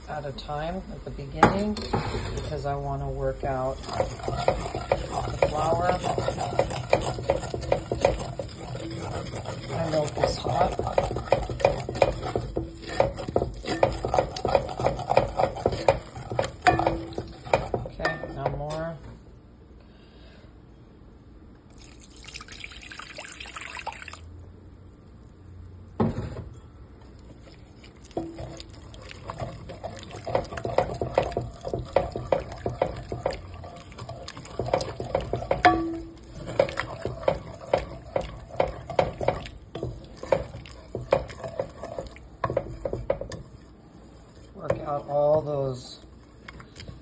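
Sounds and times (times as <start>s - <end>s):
wooden spoon scraping a pot: 1.5s - 19.0s, 27.1s - 47.0s
milk pouring into a pot: 3.6s - 17.7s, 21.7s - 24.3s, 27.1s - 43.2s
person speaking: 9.7s - 11.0s, 17.9s - 19.1s, 44.6s - 46.1s.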